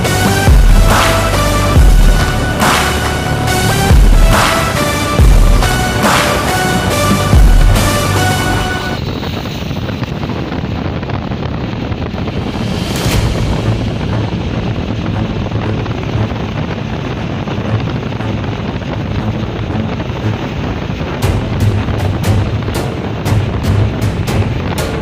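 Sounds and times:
faint music: 0.0s - 25.0s
wind buffeting microphone: 0.0s - 25.0s.

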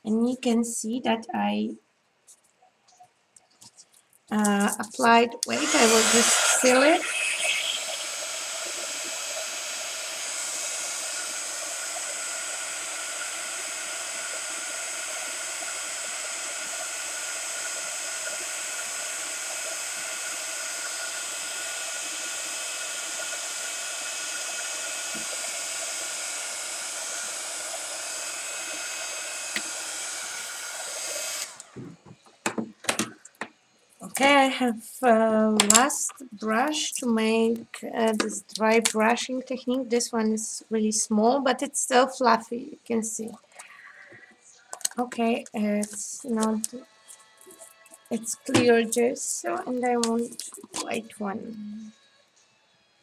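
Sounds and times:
hot-air blower running: 5.4s - 33.2s.

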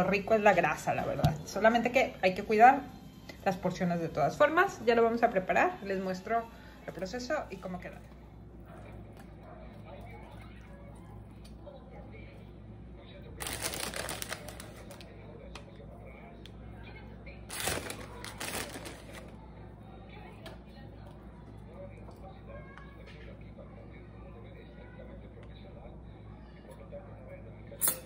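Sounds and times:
low steady hum: 0.0s - 28.0s
plastic bag rustling: 13.4s - 15.0s, 17.5s - 19.4s.

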